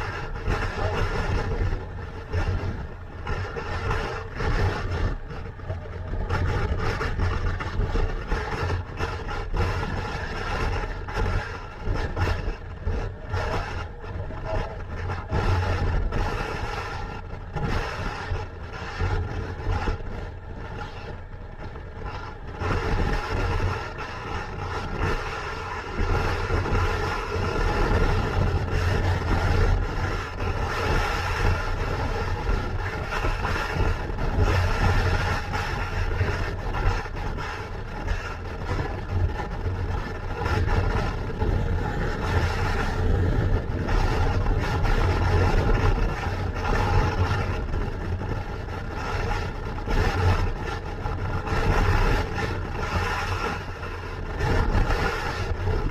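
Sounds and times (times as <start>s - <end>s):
wind rush on microphone: 0.0s - 55.9s.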